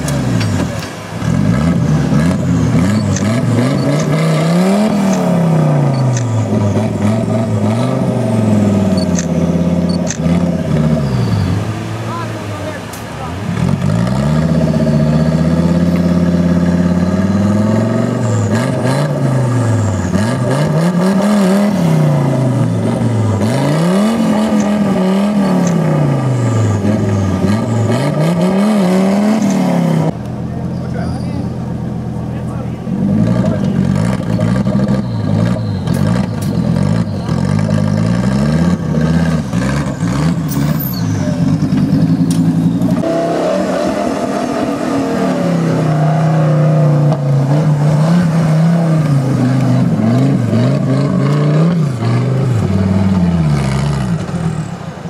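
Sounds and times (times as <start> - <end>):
off-road buggy engine revving: 0.0 - 55.0.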